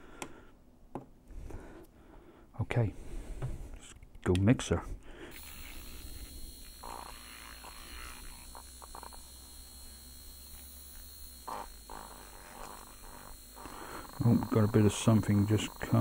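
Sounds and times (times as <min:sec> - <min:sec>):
handheld mixer humming: 0:05.3 - 0:16.0.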